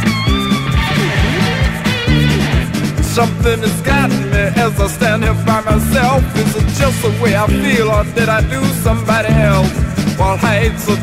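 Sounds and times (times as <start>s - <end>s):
bent wavering guitar line: 0.0s - 4.5s
bass guitar: 0.0s - 11.0s
drum beat: 0.0s - 11.0s
electric guitar: 0.0s - 11.0s.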